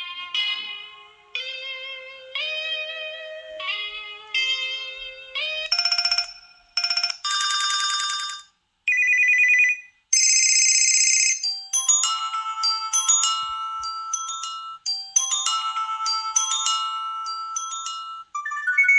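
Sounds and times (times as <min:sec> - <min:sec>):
electronic phone ringtones: 0:05.7 - 0:18.9
tinkling bell-like melody: 0:10.2 - 0:18.9.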